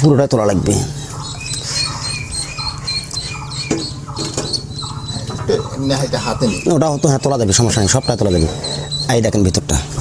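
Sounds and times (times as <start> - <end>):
steady low hum: 0.0 - 10.0
high-pitched animal chirps: 1.0 - 9.2.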